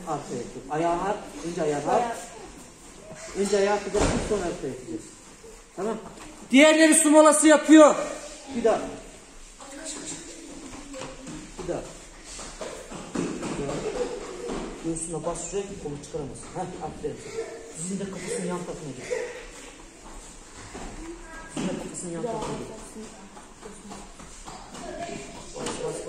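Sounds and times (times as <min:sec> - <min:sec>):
man speaking: 0:00.0 - 0:05.2, 0:05.8 - 0:09.1, 0:14.8 - 0:19.4
bodies shuffling on a mat: 0:08.1 - 0:26.0.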